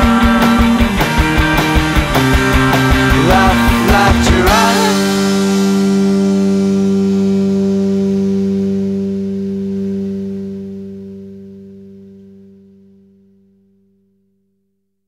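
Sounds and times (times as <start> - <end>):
guitar chord ringing out: 0.0 - 13.7.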